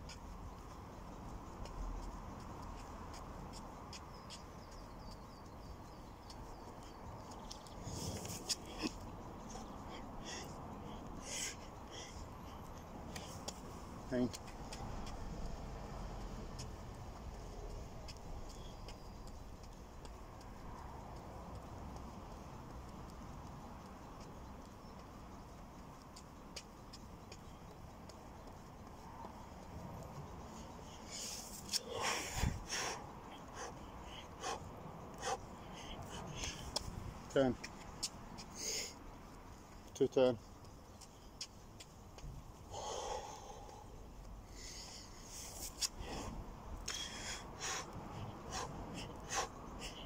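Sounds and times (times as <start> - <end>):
man breathing hard: 9.6 - 13.3, 31.0 - 36.8, 42.6 - 50.0.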